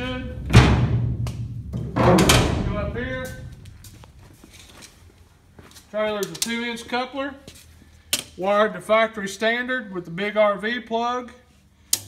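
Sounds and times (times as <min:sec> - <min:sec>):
low steady hum: 0:00.0 - 0:05.9
footsteps on concrete floor: 0:00.4 - 0:08.0.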